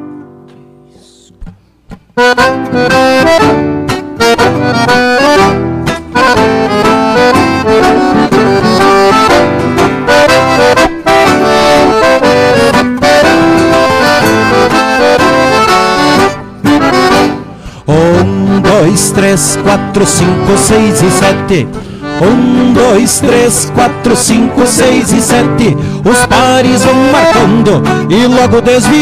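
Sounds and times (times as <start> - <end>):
accordion folk dance tune: 1.0 - 29.0.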